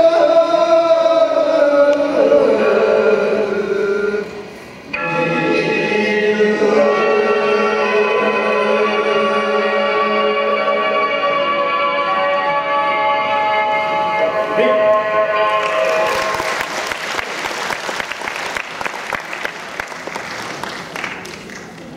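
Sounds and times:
sustained instrumental tones: 2.4s - 16.6s.

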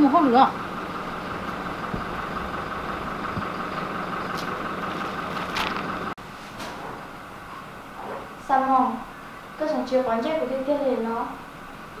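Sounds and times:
steady engine-like drone: 0.0s - 6.2s.

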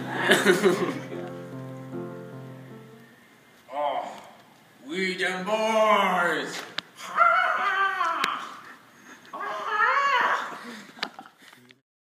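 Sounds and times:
young man wailing: 0.0s - 1.1s, 7.0s - 8.6s, 9.4s - 10.6s.

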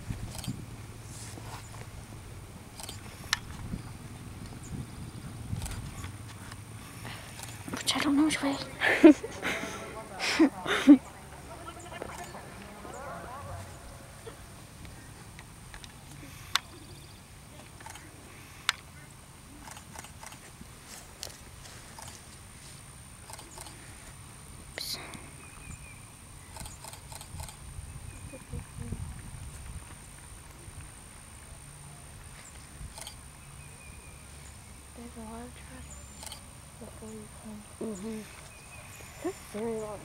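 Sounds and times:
faint distant voices: 3.8s - 25.5s.

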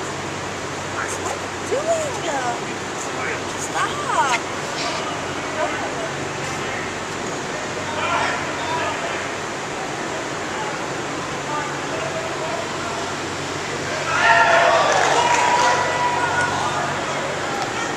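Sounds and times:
steady background hum: 0.0s - 17.9s.

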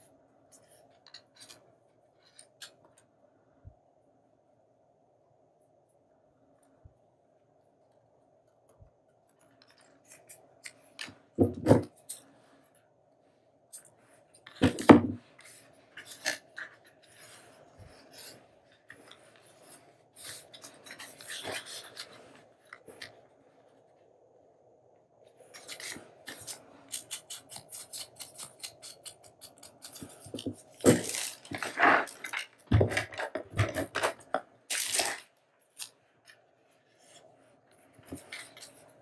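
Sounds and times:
paper rustling: 14.4s - 23.2s, 25.5s - 28.8s, 29.8s - 36.0s.

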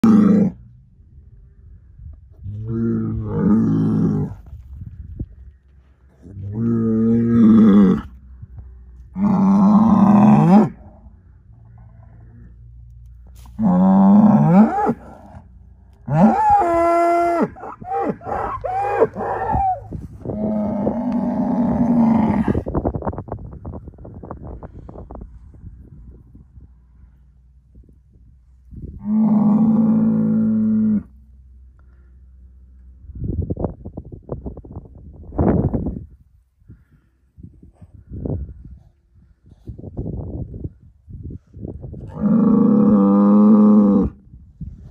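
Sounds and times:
bull bellowing: 0.0s - 0.7s, 6.3s - 8.2s, 9.1s - 12.6s, 13.4s - 22.7s, 29.0s - 31.2s, 42.0s - 44.2s.

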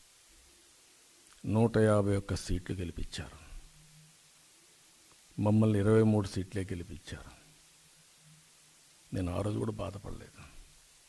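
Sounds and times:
man speaking into a microphone: 1.4s - 3.6s, 5.4s - 7.5s, 9.1s - 10.6s.

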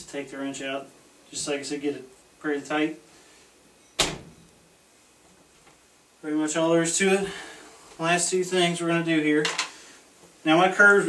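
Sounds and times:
glass shower door clacking shut: 4.0s - 4.4s.

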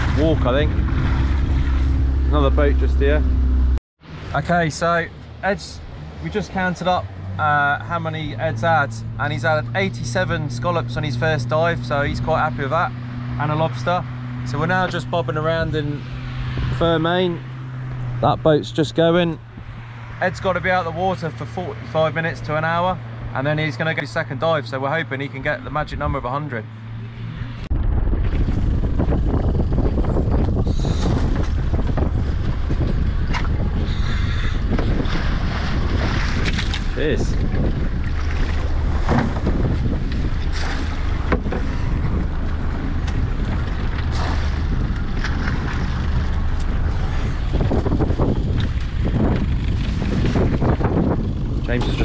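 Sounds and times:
wind buffeting microphone: 0.0s - 3.8s, 5.8s - 20.2s, 27.4s - 52.0s.

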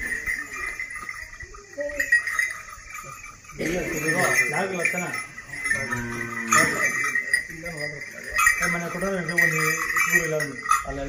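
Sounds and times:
small brass bells jingling: 0.0s - 11.0s.

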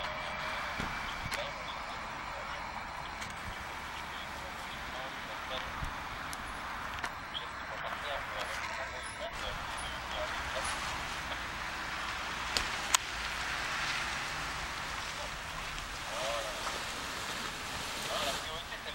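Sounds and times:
faint distant voices: 0.0s - 18.9s
steady rushing noise: 0.0s - 18.9s.

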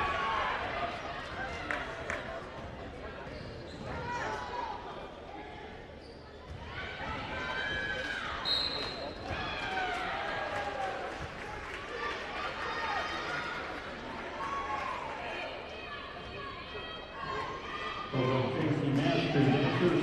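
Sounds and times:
referee's whistle: 8.4s - 9.1s.

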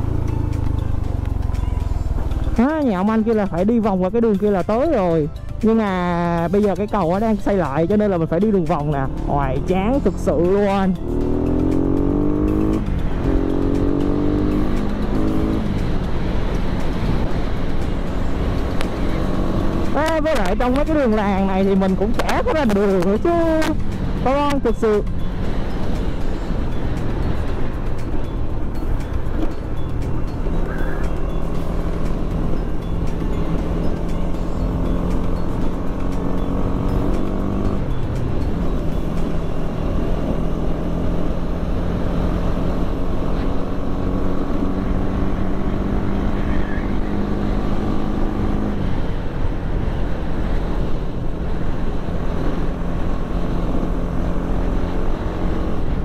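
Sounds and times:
motorcycle engine accelerating: 0.0s - 2.8s, 8.4s - 56.0s.

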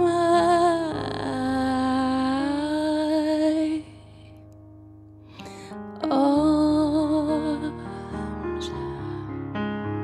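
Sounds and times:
woman singing wordless notes: 0.0s - 4.0s, 6.0s - 9.3s
digital piano chords: 0.0s - 10.0s.

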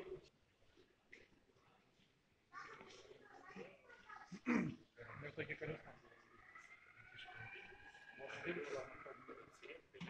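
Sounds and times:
indistinct chatter: 2.5s - 10.0s.

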